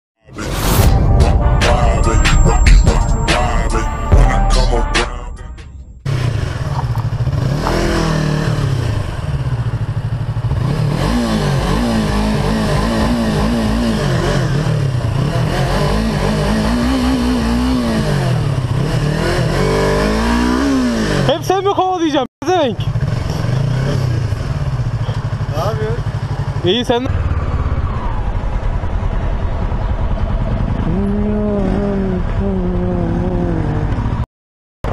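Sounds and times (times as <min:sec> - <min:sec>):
motorcycle engine revving: 0:06.0 - 0:21.6, 0:22.4 - 0:34.9.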